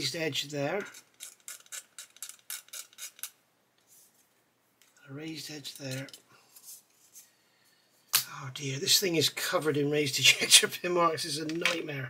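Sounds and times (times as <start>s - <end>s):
metal tool scraping plastic: 0.8s - 3.4s.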